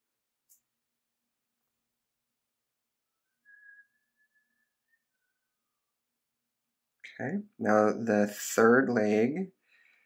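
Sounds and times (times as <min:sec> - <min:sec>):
faint whistle: 0:03.0 - 0:05.9.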